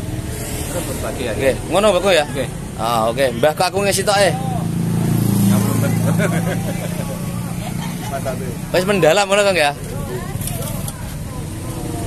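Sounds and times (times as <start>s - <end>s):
vehicle engine humming: 0.0s - 12.0s
voices: 0.0s - 12.0s.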